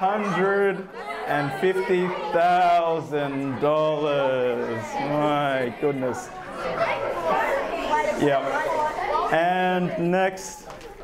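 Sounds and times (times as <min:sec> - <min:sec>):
man speaking: 0:00.0 - 0:06.3, 0:09.3 - 0:10.6
children chattering: 0:00.0 - 0:11.0.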